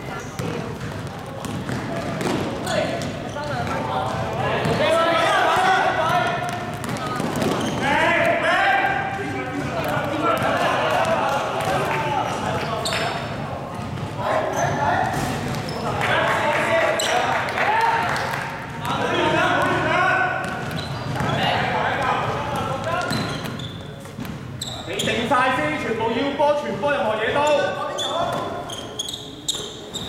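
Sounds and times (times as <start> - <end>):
basketball bouncing on hard floor: 0.4 - 4.8, 6.5 - 7.8, 20.4 - 21.4
players and spectators shouting: 4.8 - 6.5.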